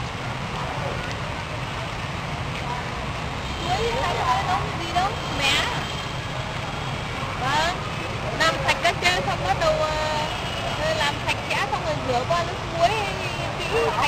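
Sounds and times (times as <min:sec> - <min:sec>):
people talking indistinctly: 0:02.6 - 0:06.2, 0:07.2 - 0:14.0.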